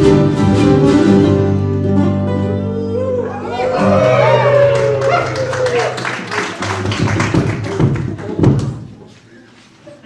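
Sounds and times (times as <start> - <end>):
audience clapping: 3.8 - 9.0
voices among clapping: 4.6 - 8.7.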